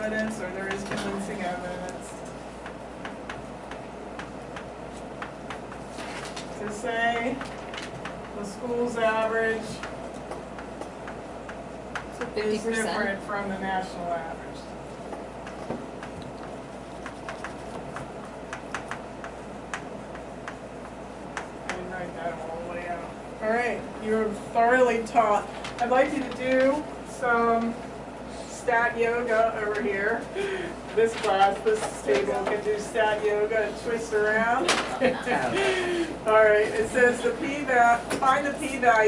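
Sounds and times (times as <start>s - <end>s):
chalk tapping on blackboard: 15.1s - 20.6s.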